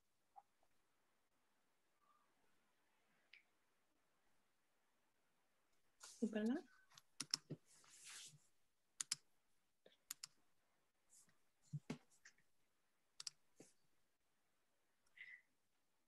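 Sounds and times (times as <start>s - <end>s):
computer keys clicking: 6.4s - 7.5s, 9.0s - 9.2s, 10.1s - 10.4s, 13.2s - 13.4s.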